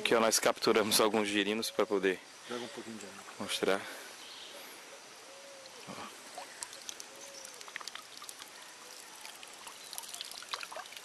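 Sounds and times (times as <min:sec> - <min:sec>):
faint river flow: 0:00.0 - 0:11.0
water dripping from hands: 0:05.6 - 0:11.0.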